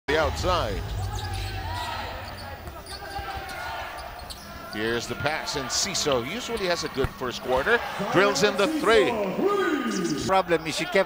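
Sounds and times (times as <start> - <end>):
murmur of crowd: 0.1 - 11.0.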